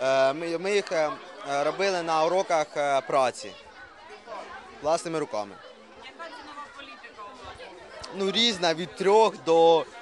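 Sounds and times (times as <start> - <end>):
faint background chatter: 0.0 - 10.0.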